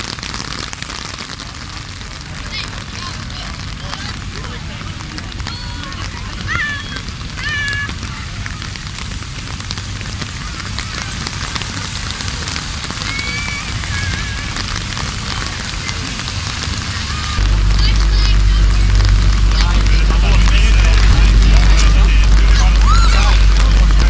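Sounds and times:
car tyres on wet road: 0.0 - 24.0
heavy rain hissing: 0.0 - 24.0
loud low rumble: 0.0 - 24.0.

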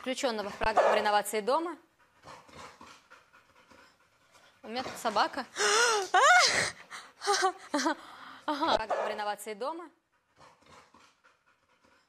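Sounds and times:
dog panting faintly: 0.0 - 12.0.

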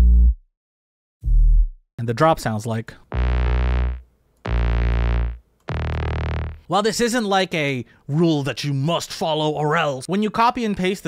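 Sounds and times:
supersaw synthesizer chords: 3.1 - 6.6
heavy bass: 3.1 - 6.7.

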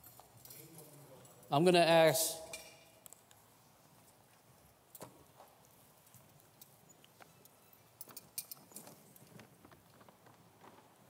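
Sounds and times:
footsteps on a stage: 8.8 - 11.0.

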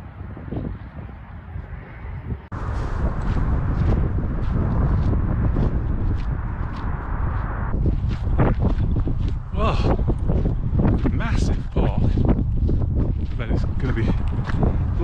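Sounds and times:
wind buffeting microphone: 0.0 - 15.0
footsteps on grass: 2.5 - 14.9.

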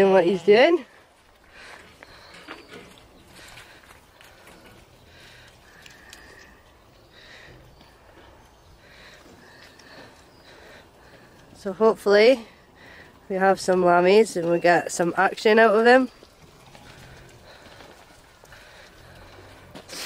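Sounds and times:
sheep hooves shuffling: 0.0 - 20.0
sheep sniffing: 16.5 - 20.0.

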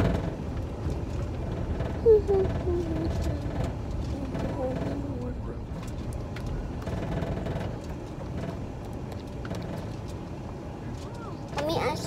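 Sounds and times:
car driving rumble inside cabin: 0.0 - 12.0.

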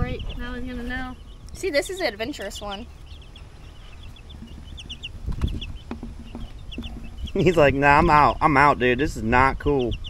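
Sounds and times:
chicks peeping: 0.0 - 10.0
soft knocks: 4.3 - 7.5.

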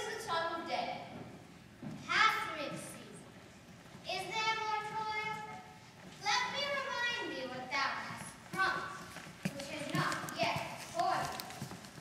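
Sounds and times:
young person speaking lines: 0.0 - 1.1, 2.0 - 3.3, 4.1 - 11.5.

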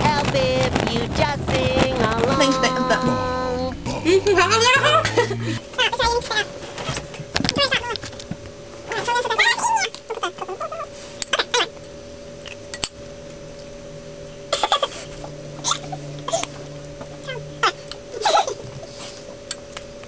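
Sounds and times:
faint steady hum: 0.0 - 20.0
person making wordless vocal sounds: 1.3 - 5.8.

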